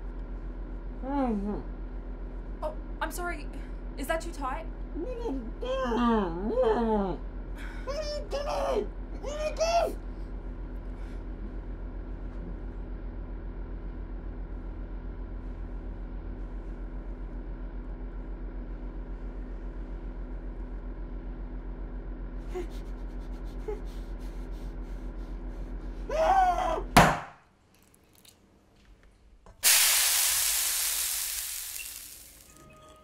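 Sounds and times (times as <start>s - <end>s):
low hum with held tones: 0.0s - 33.0s
man's muffled moan: 26.0s - 27.0s.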